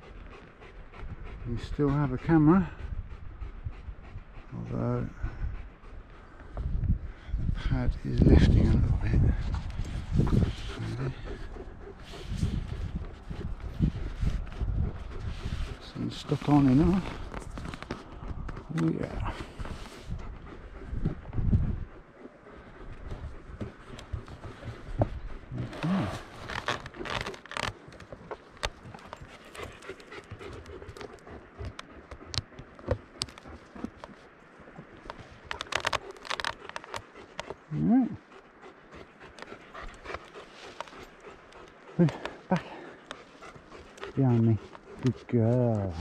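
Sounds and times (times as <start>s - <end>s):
dog panting hard: 0.0s - 46.0s.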